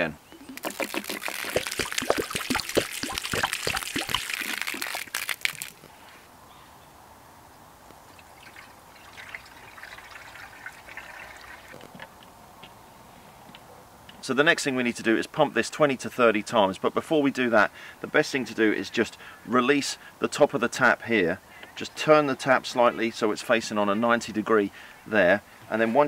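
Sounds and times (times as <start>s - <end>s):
water glugging and splashing: 0.0s - 5.9s, 8.1s - 12.1s
water trickling from a jug: 0.0s - 5.9s, 8.0s - 12.2s.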